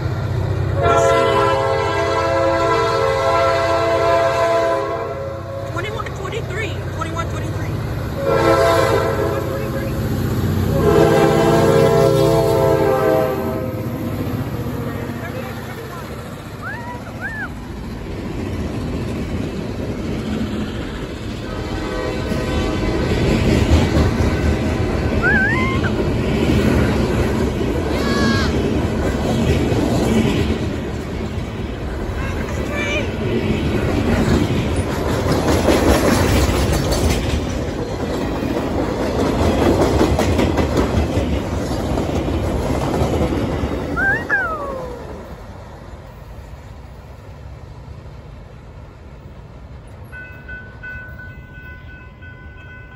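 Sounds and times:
freight train wheels rumbling: 0:00.0 - 0:52.9.

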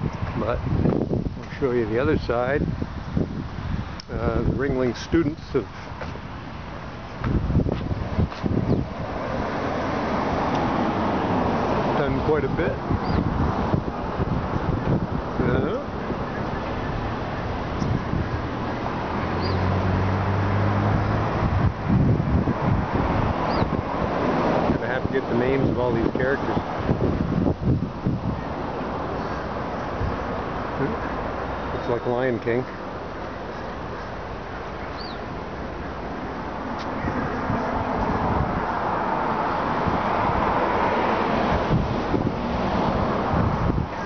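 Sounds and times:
passing vehicle: 0:00.0 - 0:44.0
wind buffeting microphone: 0:00.0 - 0:44.0.

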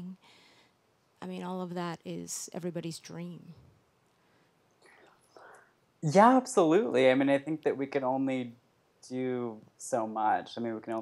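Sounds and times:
faint breathy whispers: 0:04.4 - 0:05.8.

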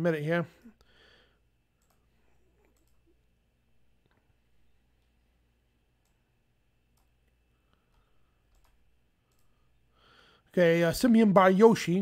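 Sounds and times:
computer mouse clicks: 0:01.8 - 0:03.1, 0:06.9 - 0:09.6.

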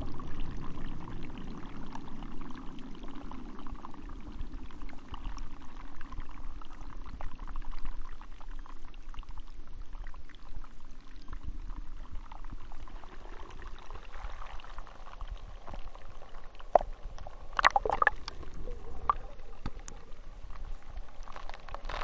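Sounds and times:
air bubbles crackling and popping: 0:00.0 - 0:22.0.

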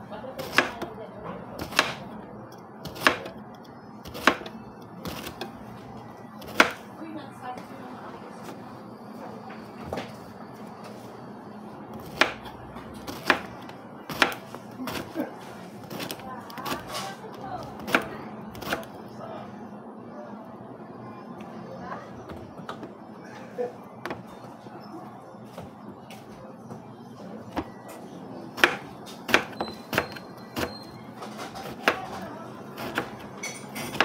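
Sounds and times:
knife chopping on plastic board: 0:01.6 - 0:02.0, 0:13.1 - 0:15.1, 0:28.6 - 0:30.8.

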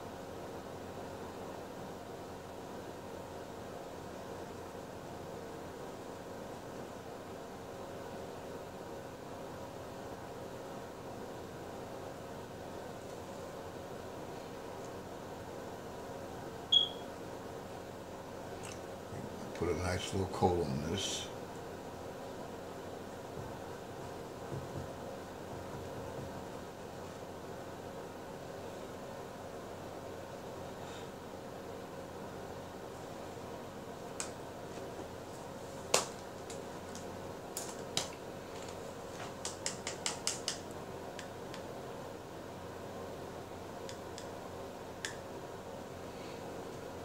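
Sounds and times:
steady mechanical hum: 0:00.0 - 0:47.0.

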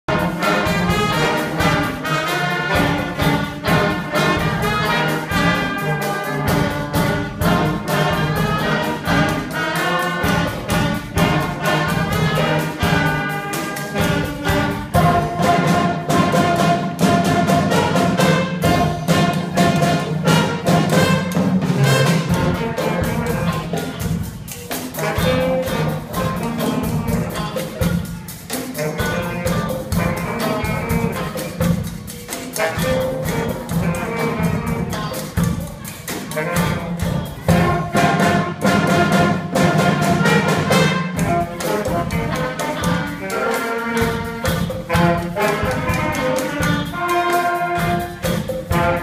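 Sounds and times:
drum kit steady beat: 0:00.0 - 0:49.0
saxophones and trumpet: 0:00.0 - 0:49.0.

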